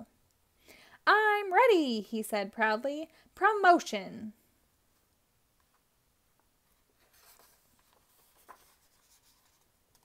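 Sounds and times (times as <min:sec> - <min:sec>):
paper page turning: 0:06.7 - 0:10.0.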